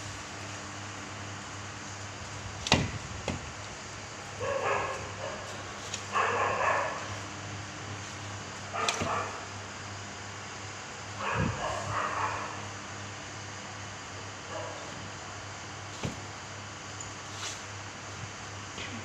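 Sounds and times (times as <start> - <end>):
dog barking: 4.4 - 5.5, 6.1 - 7.1, 8.7 - 9.5, 11.2 - 12.6, 14.5 - 14.9.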